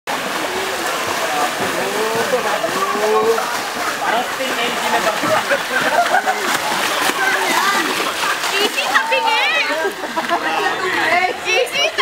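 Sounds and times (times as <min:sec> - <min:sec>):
onlookers' voices: 0:00.1 - 0:12.0
water splashing from swimmers: 0:00.1 - 0:12.0.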